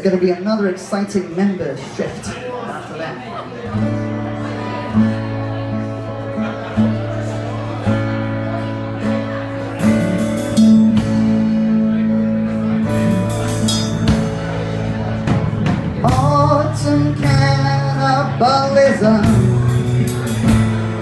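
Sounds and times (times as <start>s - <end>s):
acoustic guitar: 3.2s - 21.0s
electric bass: 3.7s - 21.0s
drum and cymbal hits: 9.9s - 11.7s, 12.9s - 17.5s, 19.2s - 21.0s.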